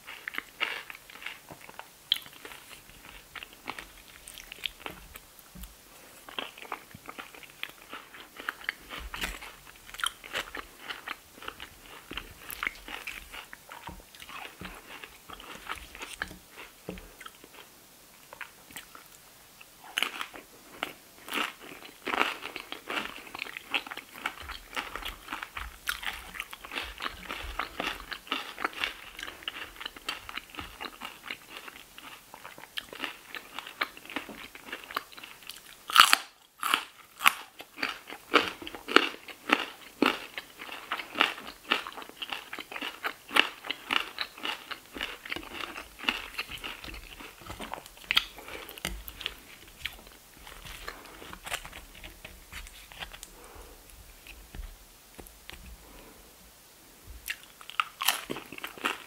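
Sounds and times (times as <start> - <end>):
crunching and chewing chips: 0.0 - 54.6, 57.2 - 59.0.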